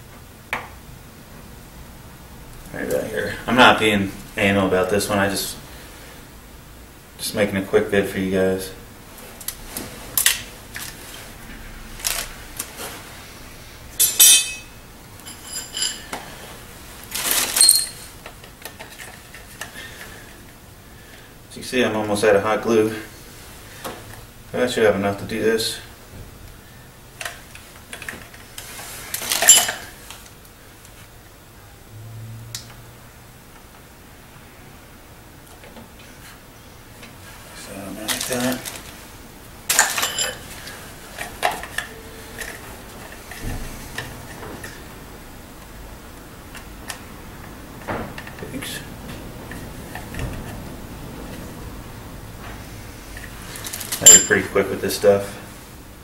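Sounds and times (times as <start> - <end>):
metal hand tools clinking: 14.0 - 16.2, 17.6 - 18.1, 29.2 - 30.0, 39.7 - 40.6, 53.7 - 54.5.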